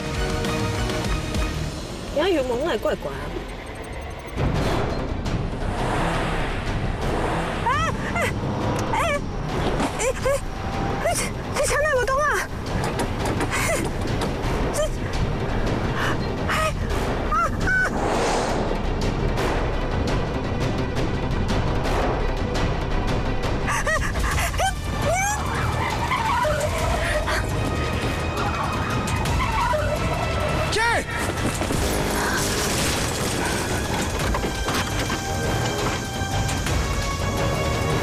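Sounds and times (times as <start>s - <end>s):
car engine and road noise: 0.0s - 38.0s
car engine rumbling: 1.7s - 17.8s
woman shrieking: 23.7s - 27.5s
tyres squealing: 23.8s - 37.9s.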